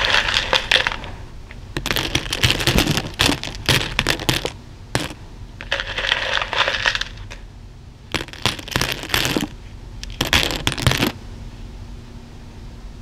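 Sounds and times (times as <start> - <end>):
plastic beads clicking and rattling: 0.0 - 1.1, 1.8 - 7.4, 8.1 - 11.2.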